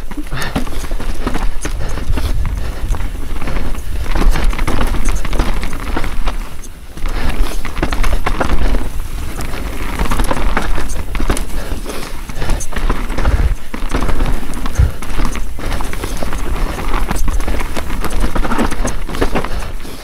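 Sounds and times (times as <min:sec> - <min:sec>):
bike knocking and rattling: 0:00.0 - 0:20.0
bike tyres rumbling on dirt: 0:00.0 - 0:20.0.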